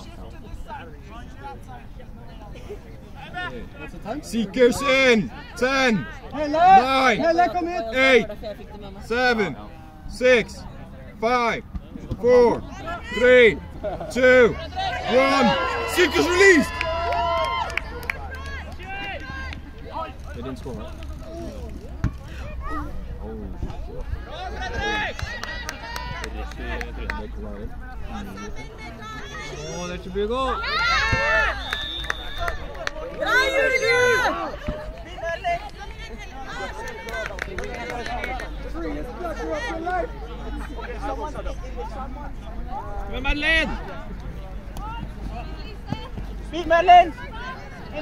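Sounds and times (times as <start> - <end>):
voices shouting outdoors: 0.0 - 48.0.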